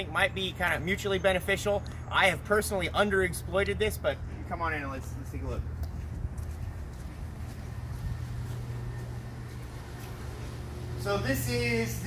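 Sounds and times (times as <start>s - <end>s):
steady low hum: 0.0s - 12.0s
footsteps walking: 5.7s - 11.0s.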